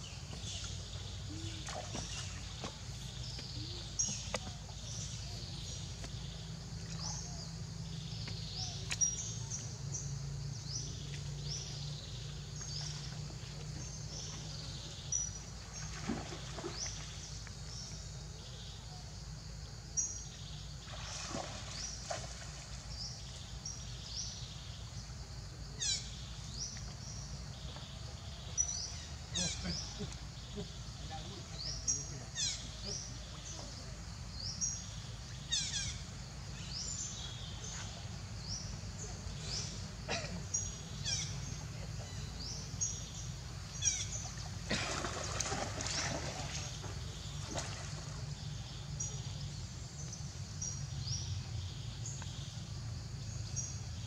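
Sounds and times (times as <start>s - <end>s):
birds chirping: 0.0s - 19.0s, 20.0s - 54.0s
water splashing: 0.3s - 4.8s, 15.5s - 17.3s, 20.8s - 23.0s, 44.1s - 48.8s.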